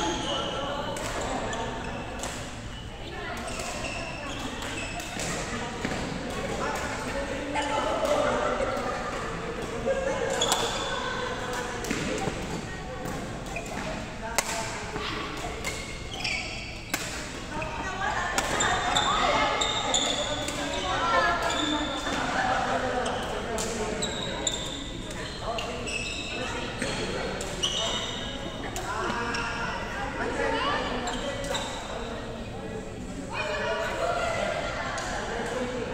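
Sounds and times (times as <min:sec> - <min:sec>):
voices in reverberant hall: 0:00.0 - 0:35.9
shoes squeaking on floor: 0:02.6 - 0:05.6, 0:15.7 - 0:22.2, 0:23.9 - 0:29.7
rackets striking shuttlecock: 0:04.4 - 0:07.0, 0:13.0 - 0:15.9.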